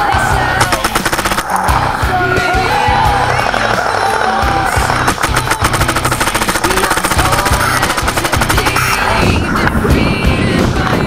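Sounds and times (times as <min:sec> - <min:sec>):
background music: 0:00.0 - 0:11.0
paintball marker firing rapidly: 0:00.6 - 0:01.7, 0:04.9 - 0:09.2.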